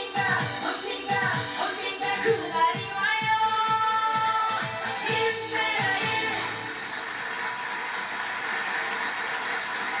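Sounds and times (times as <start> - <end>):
singing with backing music: 0.0 - 7.0
audience applause: 6.6 - 10.0.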